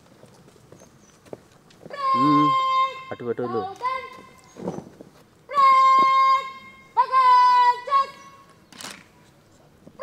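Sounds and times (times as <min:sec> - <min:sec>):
bugle call long notes: 0:02.0 - 0:04.2.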